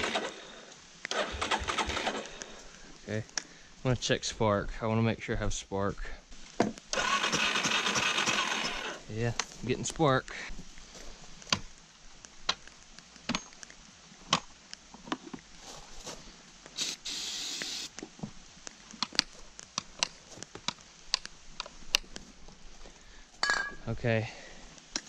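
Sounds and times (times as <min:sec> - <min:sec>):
aerosol can spraying: 0:16.8 - 0:17.9.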